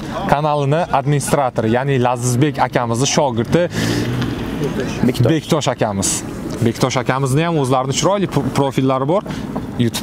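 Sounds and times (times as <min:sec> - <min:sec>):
man's voice: 0:00.0 - 0:10.0
car driving past: 0:02.4 - 0:07.0.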